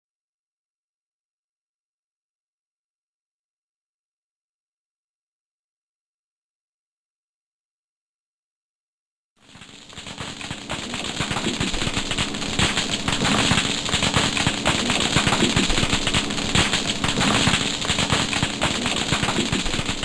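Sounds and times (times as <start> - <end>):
snapping shrimp crackle: 9.5 - 20.0.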